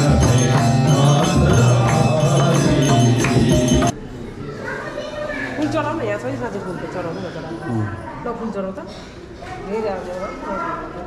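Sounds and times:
indistinct talk of people: 0:00.0 - 0:11.0
child's voice: 0:04.4 - 0:05.7.

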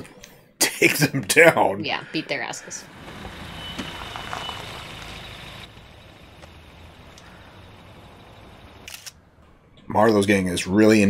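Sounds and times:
steady low rumble: 0:02.7 - 0:09.9.

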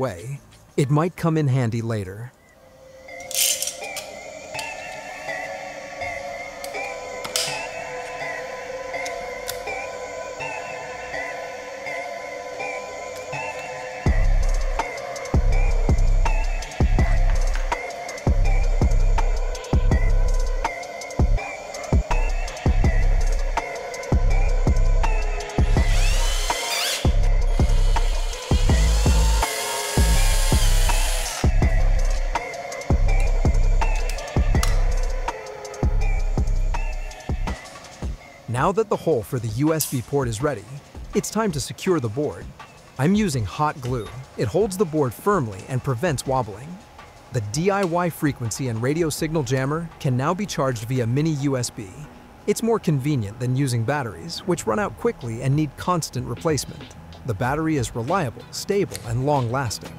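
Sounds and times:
background music: 0:00.0 - 0:59.9
electronic music with kick drum: 0:14.0 - 0:38.2, 0:42.4 - 0:45.0
cordless drill boring plastic: 0:25.6 - 0:31.5.

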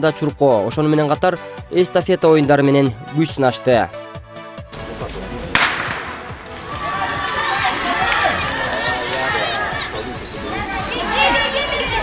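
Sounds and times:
starting pistol shot: 0:04.8 - 0:06.6
spectators' voices: 0:04.8 - 0:12.0.

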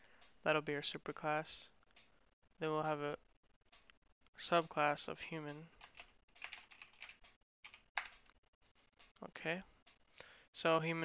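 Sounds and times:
keyboard typing: 0:05.8 - 0:08.4.

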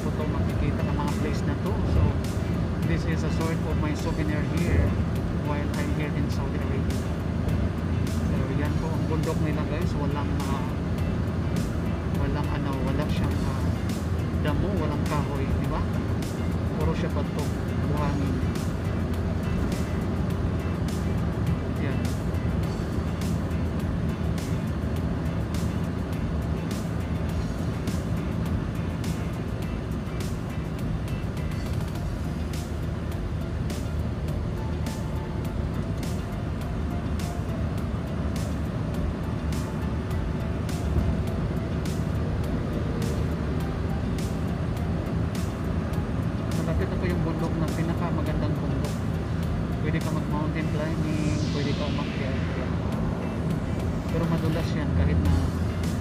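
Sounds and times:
car engine and tyre rumble: 0:00.0 - 0:56.0
music playing: 0:00.0 - 0:56.0.

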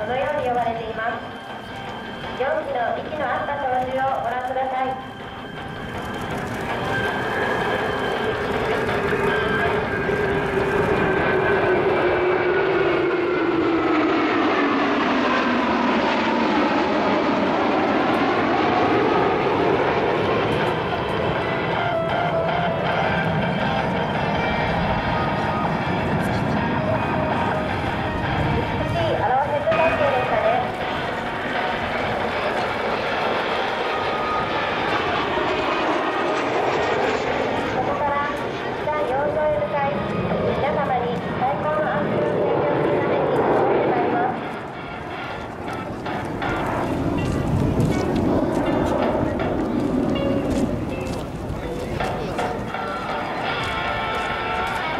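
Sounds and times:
fighter jets flying past: 0:00.0 - 0:54.9.

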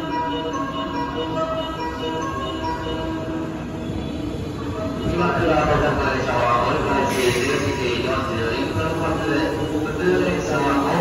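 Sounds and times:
train rumbling on rails: 0:00.0 - 0:11.0.

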